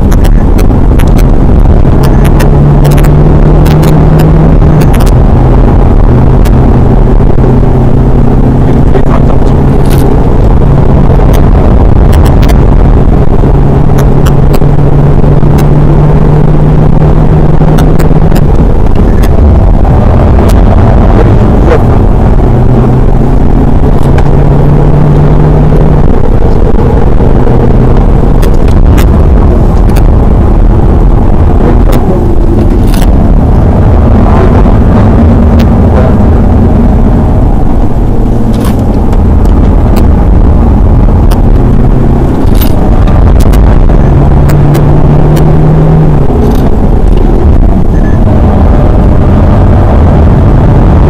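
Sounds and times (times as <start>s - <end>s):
diesel engine droning in cabin: 0.0s - 51.0s
road and tyre rumble: 0.0s - 51.0s
sharp clicks: 37.7s - 40.1s, 41.2s - 43.8s
sharp clicks or rattles: 38.5s - 39.2s, 42.3s - 42.8s.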